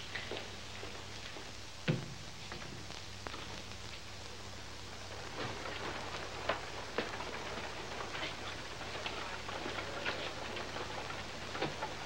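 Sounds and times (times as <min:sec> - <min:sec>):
low steady hum: 0:00.0 - 0:12.0
steady hiss: 0:00.0 - 0:12.0.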